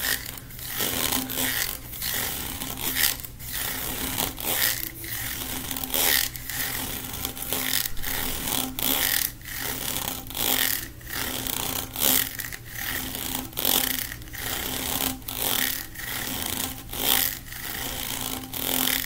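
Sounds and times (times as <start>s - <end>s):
fingers rasping ribbed plastic tube: 0.0s - 19.0s.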